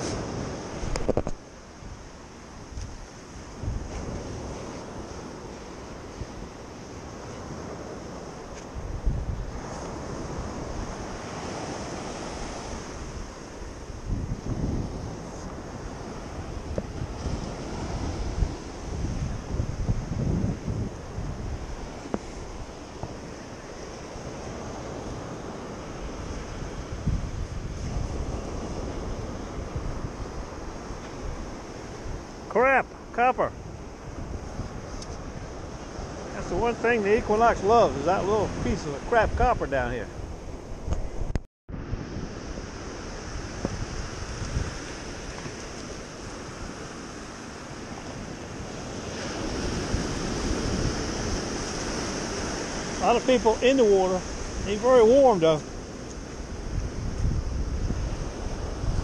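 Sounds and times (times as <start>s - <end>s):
surf washing up beach: 0.0s - 59.0s
wind rumbling on microphone: 0.0s - 59.0s.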